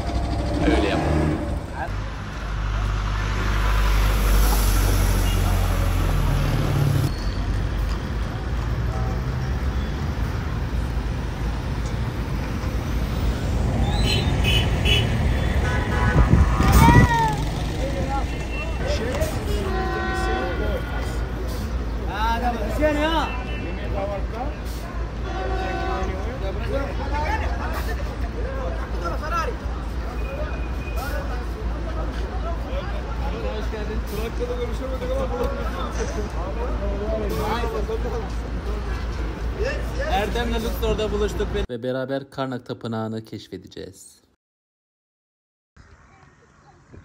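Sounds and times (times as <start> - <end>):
engine rumbling: 0.0 - 22.6
car horns tooting: 13.9 - 17.1, 18.1 - 21.6, 22.8 - 26.6
people's voices: 16.2 - 41.6.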